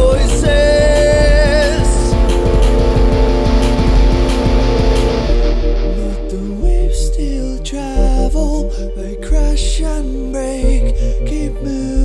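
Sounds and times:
driving drums: 0:00.0 - 0:07.4
distorted electric guitars: 0:00.0 - 0:08.7
high wavering note: 0:00.0 - 0:09.4.

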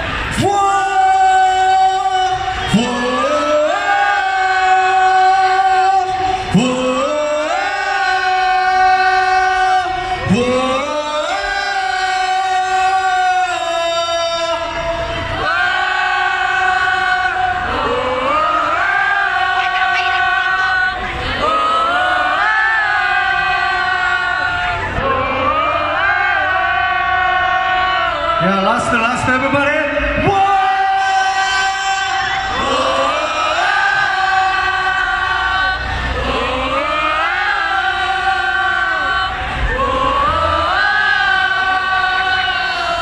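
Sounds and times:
voices holding a sung note: 0:00.0 - 0:43.0
low bass rumble: 0:38.1 - 0:42.5.

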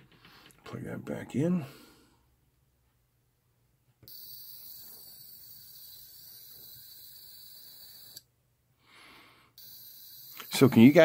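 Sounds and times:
high-pitched whine and hiss: 0:04.1 - 0:08.2, 0:09.6 - 0:11.0.

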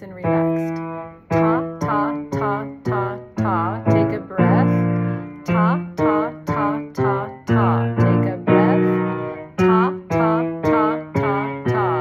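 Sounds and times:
piano: 0:00.0 - 0:12.0
woman singing syllables: 0:00.0 - 0:12.0.

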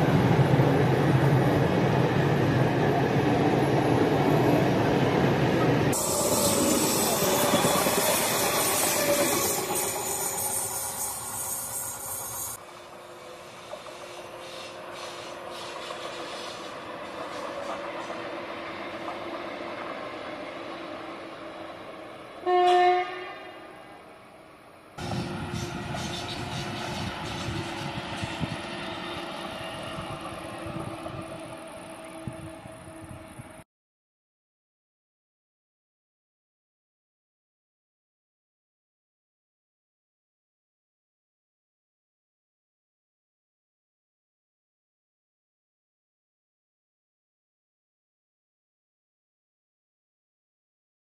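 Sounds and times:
electric trains passing: 0:00.0 - 0:33.6
train horn blast: 0:22.4 - 0:24.1.

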